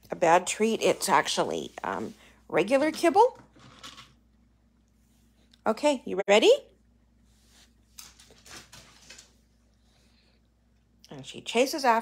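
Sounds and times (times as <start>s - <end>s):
cat paws scampering on hardwood: 7.9s - 9.5s.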